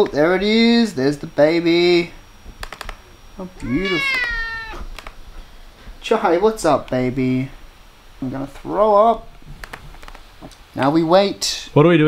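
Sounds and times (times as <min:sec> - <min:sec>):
cat meowing: 0:03.6 - 0:04.9.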